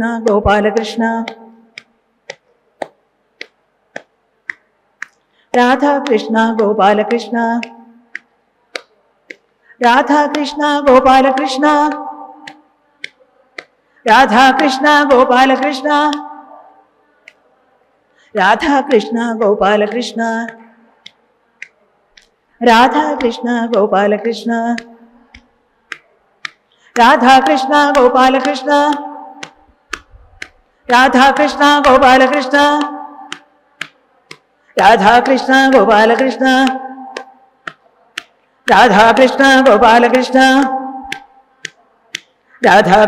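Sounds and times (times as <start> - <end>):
devotional chant: 0.0 - 2.4, 5.5 - 8.9, 9.7 - 43.0
sharp percussive clicks: 0.2 - 17.4, 18.4 - 42.8.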